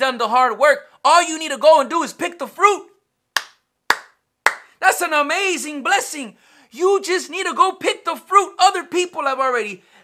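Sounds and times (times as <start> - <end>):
sharp hand claps: 3.3 - 4.8.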